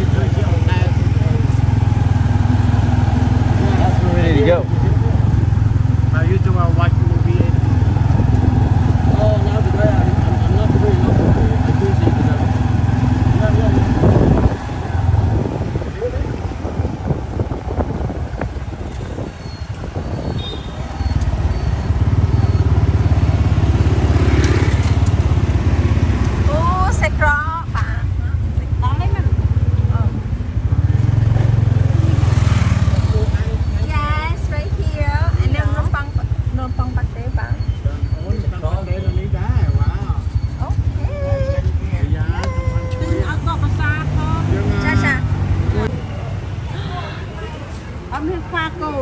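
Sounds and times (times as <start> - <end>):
voices: 0.0 - 30.4, 31.0 - 49.0
motorcycle engine running: 0.0 - 46.5
street traffic noise: 0.0 - 49.0.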